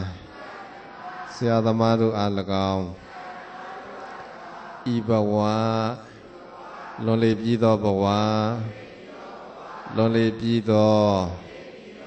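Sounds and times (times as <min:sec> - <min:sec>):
man chanting through microphone: 0:00.0 - 0:03.2, 0:04.7 - 0:12.0.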